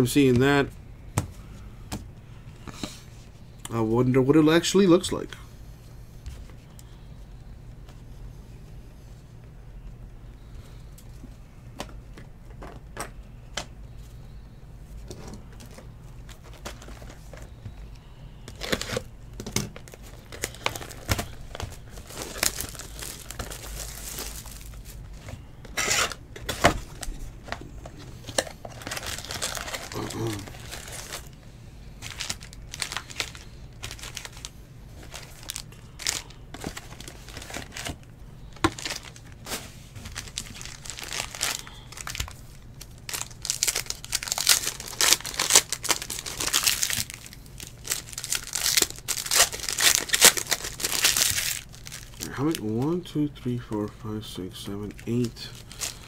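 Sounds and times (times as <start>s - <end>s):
foil packs crinkling: 15.5s - 17.9s, 18.5s - 53.9s, 54.6s - 56.0s.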